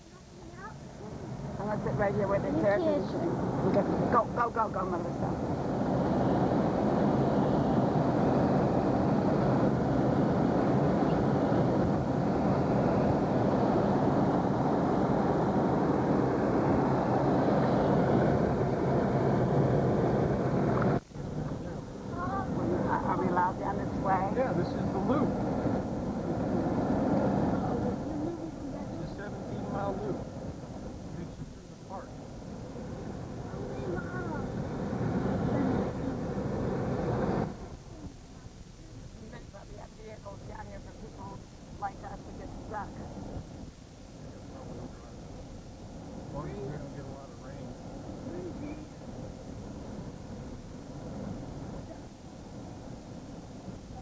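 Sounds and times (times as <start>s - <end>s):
faint voices: 0.0s - 19.3s, 20.0s - 43.4s, 44.1s - 54.0s
uneven rumble: 0.8s - 54.0s.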